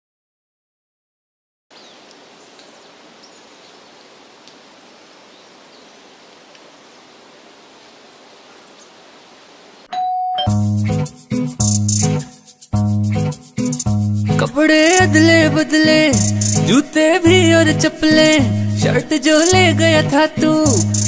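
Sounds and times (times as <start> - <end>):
faint steady hiss: 1.7 - 9.9
light ticks: 2.0 - 2.7
short ding-like tone: 9.9 - 10.7.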